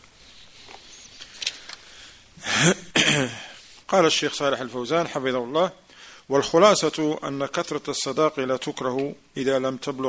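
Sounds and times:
man clearing his throat: 2.4s - 3.5s
man speaking: 2.5s - 10.0s.

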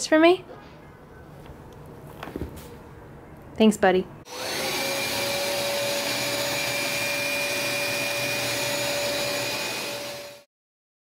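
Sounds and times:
carpet cleaner motor whining: 4.3s - 10.5s.

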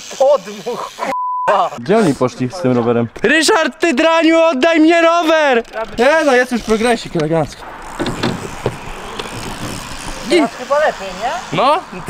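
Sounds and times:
bike wheels rolling on concrete: 1.9s - 12.0s
light clicks and knocks from bike: 5.2s - 10.3s.

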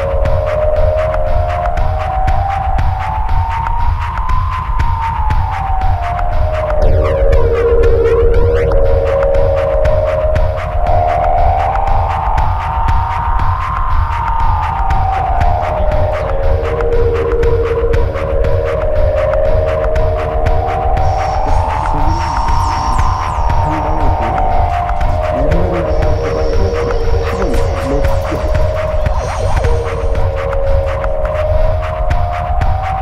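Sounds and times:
heavy bass pulse: 0.0s - 33.0s
steady percussive beat: 0.0s - 33.0s
sustained synthesizer tone: 0.0s - 33.0s
droning hum: 5.0s - 33.0s.

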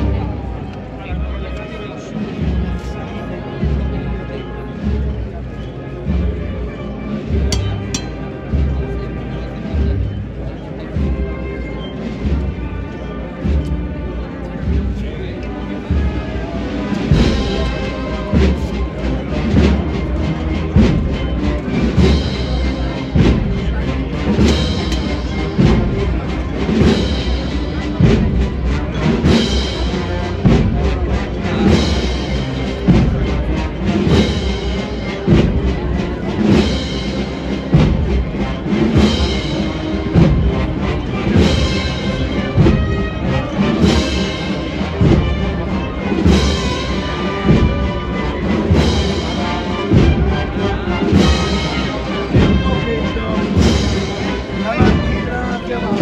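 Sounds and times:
procession band playing march: 0.0s - 56.0s
heavy drum beat: 7.3s - 8.8s, 15.9s - 56.0s
heavy bass drum beat: 7.5s - 8.2s.

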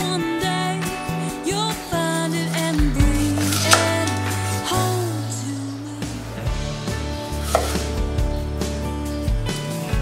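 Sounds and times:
background music: 0.0s - 10.0s
knife chopping on wooden board: 3.3s - 4.0s, 7.4s - 8.0s.

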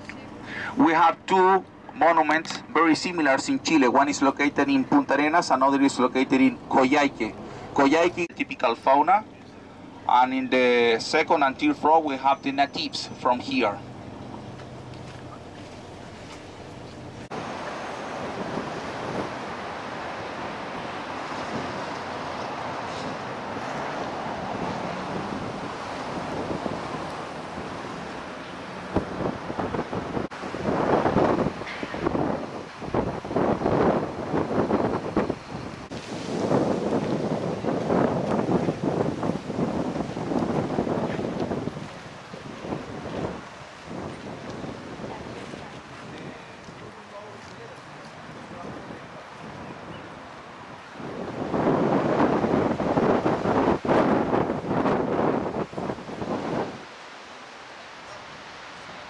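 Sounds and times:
wind buffeting microphone: 14.0s - 56.9s.

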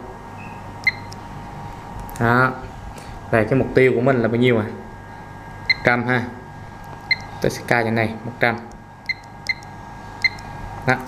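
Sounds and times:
low background hum: 0.0s - 11.0s
short electronic key beep: 0.4s - 1.1s.

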